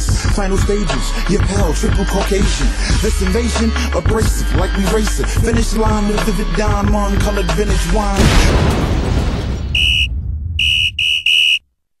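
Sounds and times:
high-pitched electronic beeps: 0:09.8 - 0:11.6.

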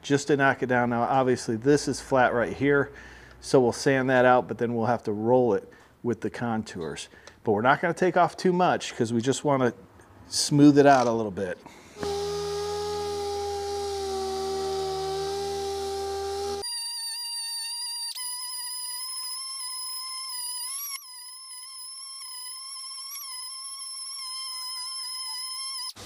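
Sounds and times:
pneumatic sander whine: 0:11.9 - 0:26.0.

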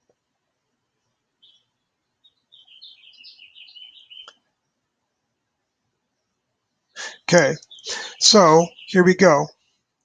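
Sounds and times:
bird warbling high chirps: 0:02.3 - 0:04.3, 0:07.0 - 0:09.5.

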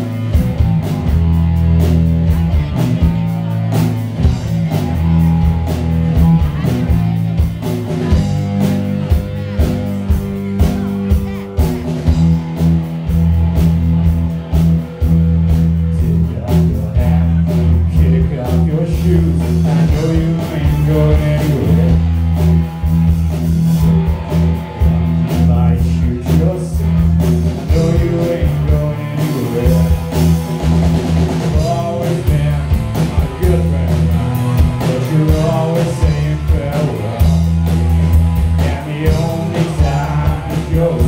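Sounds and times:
rock band playing live: 0:00.0 - 0:41.0.

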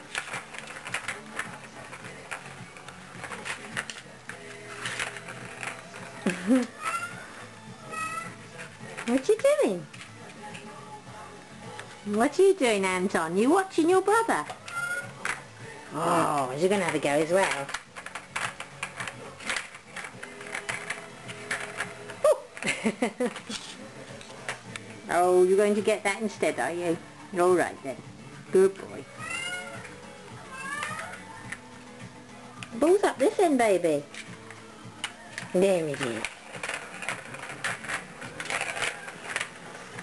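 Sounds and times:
plastic cat toy rattling on tile: 0:00.0 - 0:07.2, 0:07.9 - 0:10.7, 0:13.3 - 0:15.5, 0:16.4 - 0:23.6, 0:28.8 - 0:31.6, 0:32.8 - 0:40.0
plastic ball clicking in toy track: 0:16.4 - 0:23.5, 0:34.1 - 0:40.0.

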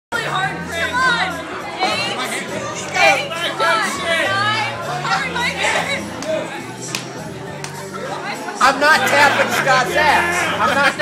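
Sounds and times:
background music: 0:00.1 - 0:11.0
voices talking over one another: 0:00.1 - 0:11.0.

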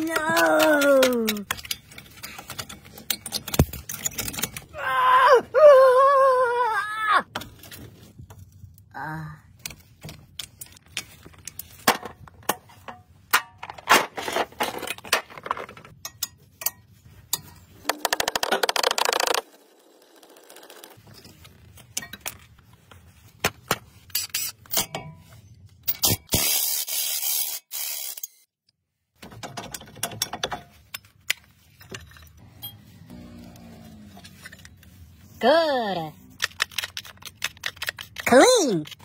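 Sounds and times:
metal parts clicking and knocking: 0:00.0 - 0:04.7, 0:29.2 - 0:32.8, 0:36.3 - 0:39.0.

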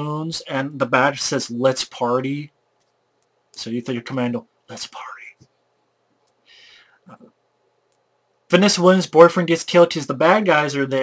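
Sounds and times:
man speaking: 0:00.0 - 0:02.6, 0:03.6 - 0:05.4, 0:08.5 - 0:11.0
breathy in-breath: 0:06.4 - 0:07.1.

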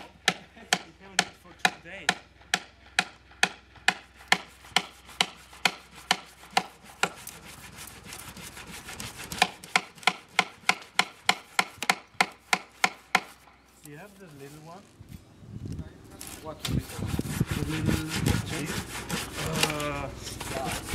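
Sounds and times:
tool knocking on wood: 0:09.3 - 0:13.3.

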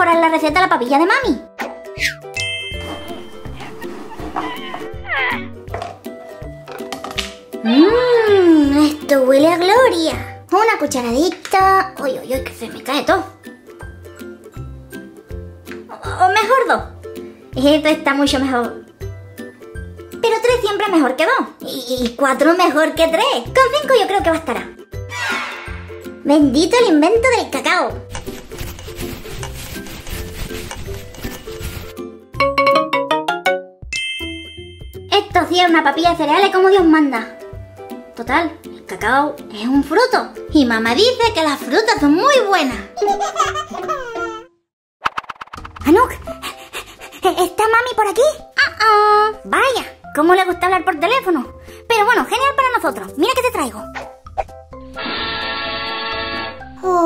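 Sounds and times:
light background music: 0:00.0 - 0:44.3, 0:45.8 - 0:57.0
bright bell-like ding: 0:02.4 - 0:03.4, 0:33.9 - 0:35.1
falling glide sound effect: 0:02.4 - 0:05.6, 0:25.1 - 0:26.0
plastic spoon scraping bowl: 0:28.1 - 0:32.0.

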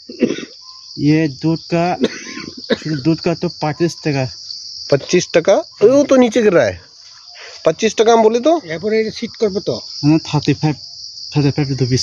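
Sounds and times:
high-pitched insect chorus: 0:00.0 - 0:12.0.

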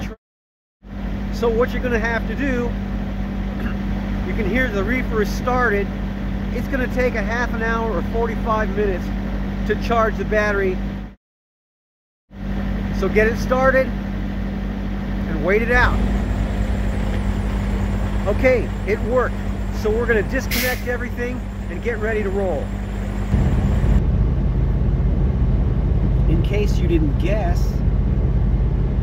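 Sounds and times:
diesel engine humming: 0:00.9 - 0:11.2, 0:12.4 - 0:29.0.

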